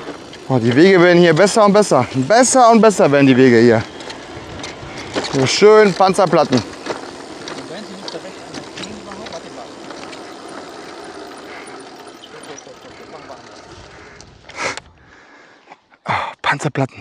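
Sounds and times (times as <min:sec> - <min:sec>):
wheels knocking over slab joints: 0:00.0 - 0:13.9
bike tyres rolling and rattling: 0:00.0 - 0:15.0.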